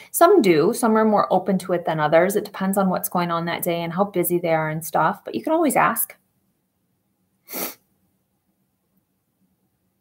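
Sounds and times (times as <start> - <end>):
woman's sharp burst of breath: 7.5 - 7.8.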